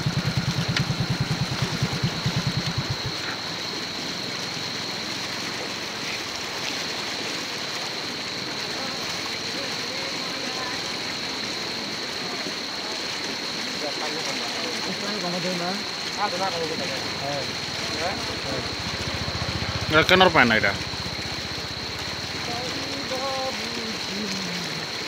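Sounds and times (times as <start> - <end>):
rushing flood water: 0.0 - 25.0.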